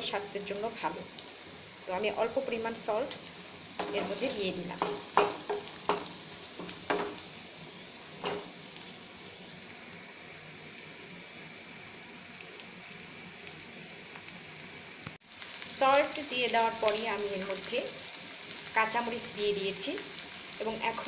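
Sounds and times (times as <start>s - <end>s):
food sizzling in oil: 0.0s - 21.0s
spatula stirring pan: 3.7s - 7.5s, 8.2s - 8.9s.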